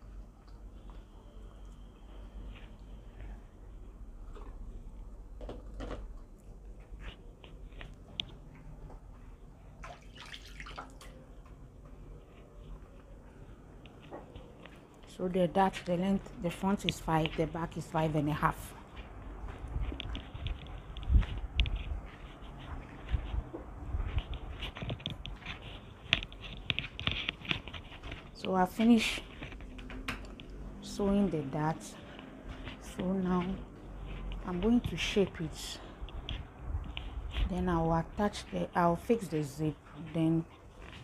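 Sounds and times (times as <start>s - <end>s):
low steady hum: 0.0s - 41.0s
crisp scrapes and clicks: 19.8s - 30.6s.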